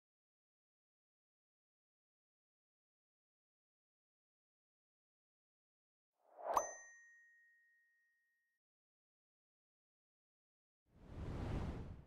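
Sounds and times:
bell-like ding: 6.4 - 8.1.

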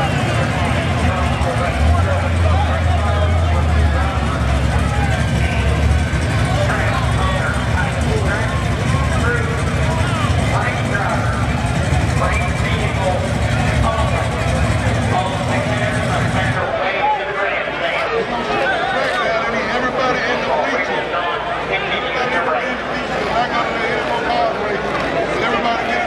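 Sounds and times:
car engine rumbling: 0.0 - 16.8
people talking: 0.0 - 26.0.

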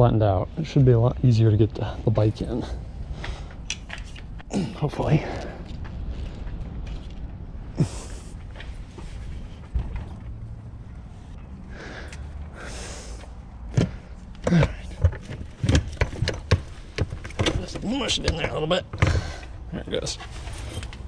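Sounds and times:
bike knocking against car floor: 13.7 - 19.4.

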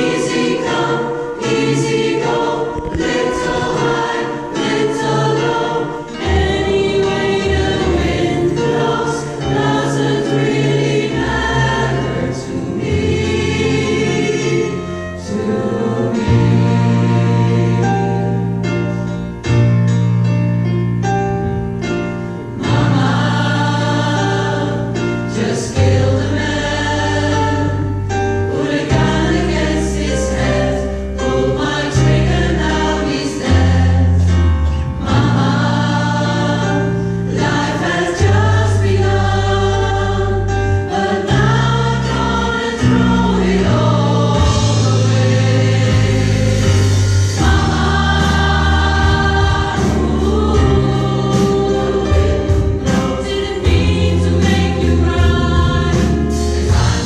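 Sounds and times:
choir singing with orchestra: 0.0 - 19.7, 21.4 - 57.0.

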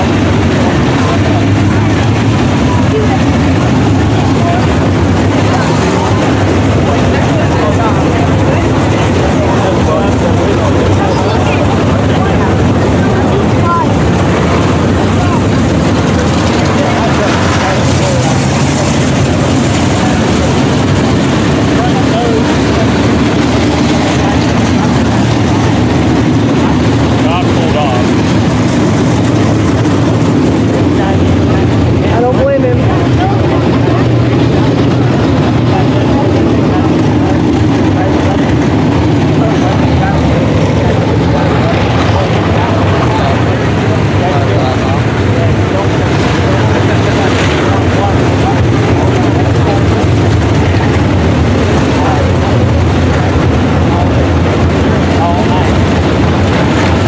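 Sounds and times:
race car engines droning: 0.0 - 57.0.

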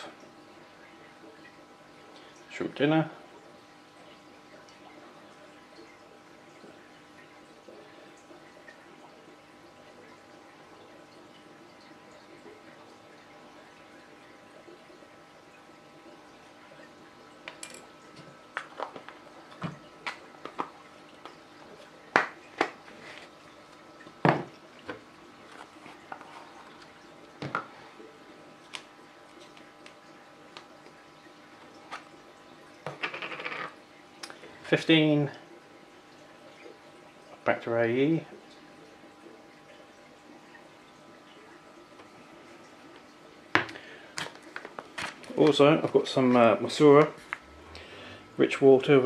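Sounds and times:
faint steady hum: 0.0 - 49.0.

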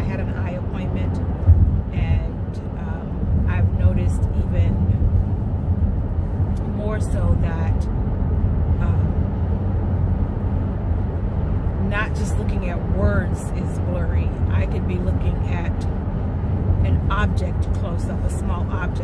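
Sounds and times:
woman talking: 0.0 - 1.3, 1.9 - 5.0, 6.6 - 7.8, 8.8 - 9.2, 11.8 - 15.9, 16.8 - 19.0
car cabin rumble: 0.0 - 19.0.

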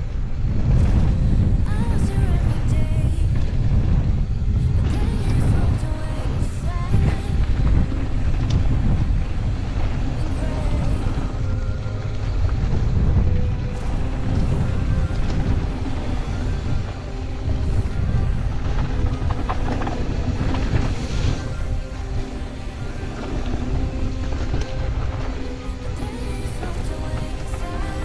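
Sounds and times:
background music: 0.0 - 28.0
bike tyres rumbling on dirt: 0.0 - 28.0
wind rushing over microphone: 0.0 - 28.0.

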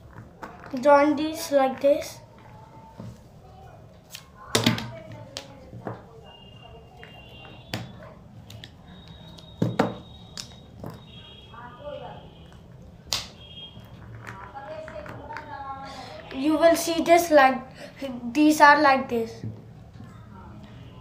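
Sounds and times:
plastic caps snapping together: 13.1 - 13.4.

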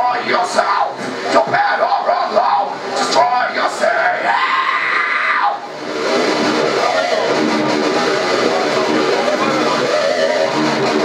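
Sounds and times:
screamed metal vocals: 0.0 - 11.0
guitar playing: 5.5 - 11.0.

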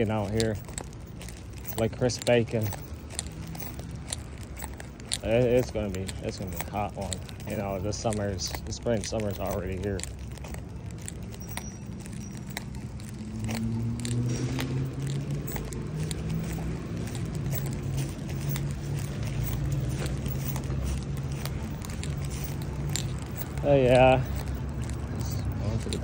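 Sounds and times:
light clicks and rattles: 0.0 - 26.0
vehicle engine humming: 0.0 - 26.0.

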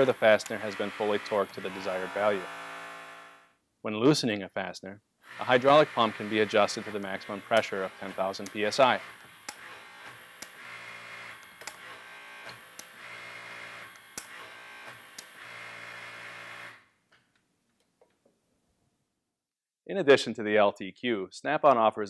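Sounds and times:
sharp clicks: 0.0 - 0.8, 7.5 - 10.6, 11.3 - 13.0, 13.9 - 15.4
hydraulic pump humming: 0.0 - 3.4, 5.3 - 16.7.

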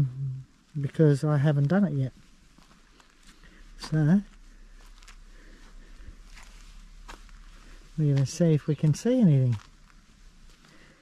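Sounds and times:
footsteps on gravelly dirt: 0.8 - 11.0.

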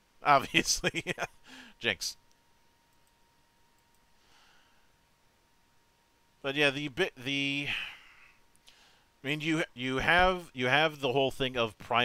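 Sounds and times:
person speaking: 0.2 - 2.2, 6.4 - 8.1, 9.2 - 12.0
faint clicks: 2.2 - 4.1.

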